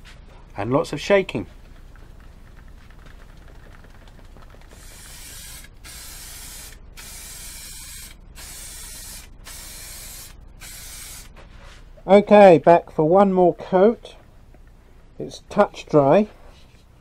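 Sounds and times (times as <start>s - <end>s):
aerosol can spraying: 4.7s - 11.3s.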